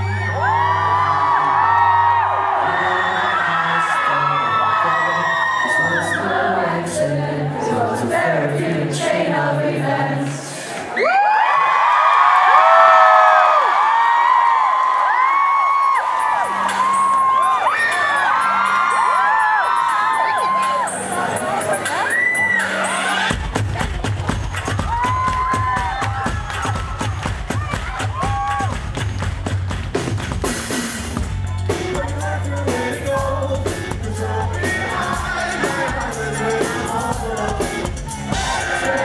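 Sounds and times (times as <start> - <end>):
audience whooping and cheering: 0.0 - 6.4, 10.8 - 29.6, 34.8 - 39.0
crowd singing along: 0.9 - 10.9, 31.7 - 39.0
live rock band playing: 28.2 - 39.0.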